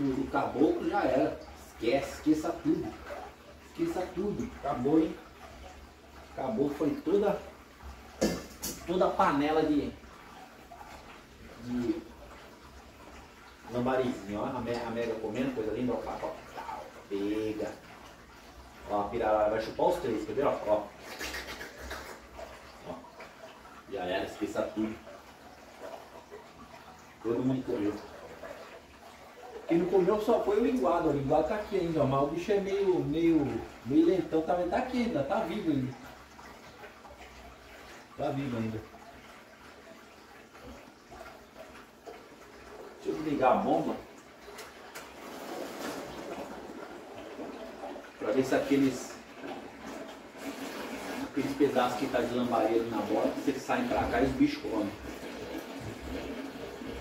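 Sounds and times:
water splashing in aquarium: 0:00.0 - 0:57.0.

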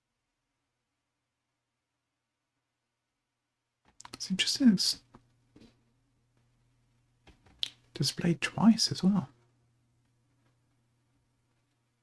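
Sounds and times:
faint low hum: 0:00.0 - 0:12.0
person speaking: 0:04.0 - 0:05.1, 0:07.6 - 0:09.4.

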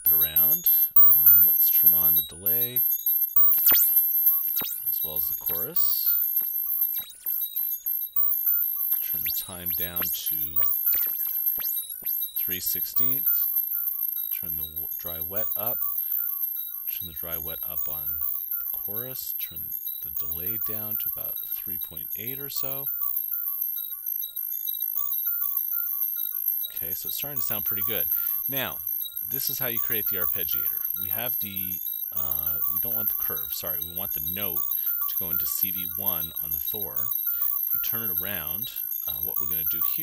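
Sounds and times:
high-pitched synthesizer bell notes: 0:00.0 - 0:40.0.

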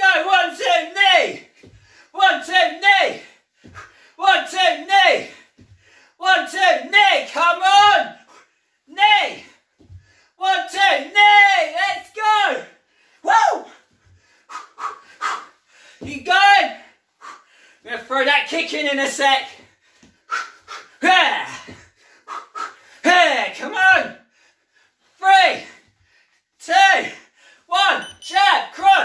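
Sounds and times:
breathing: 0:01.5 - 0:02.2, 0:03.2 - 0:04.2, 0:05.3 - 0:06.2, 0:09.5 - 0:10.4, 0:12.8 - 0:16.1, 0:16.8 - 0:17.9, 0:19.6 - 0:21.0, 0:21.7 - 0:23.0, 0:24.2 - 0:26.5, 0:27.2 - 0:27.7.

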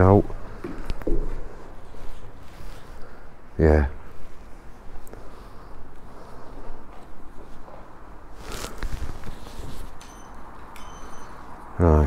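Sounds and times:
clothing rustling: 0:01.4 - 0:03.2, 0:04.1 - 0:11.0.

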